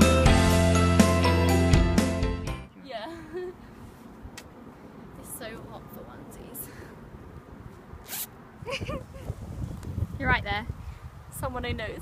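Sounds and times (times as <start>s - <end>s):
zip pulled up: 8.0s - 8.4s.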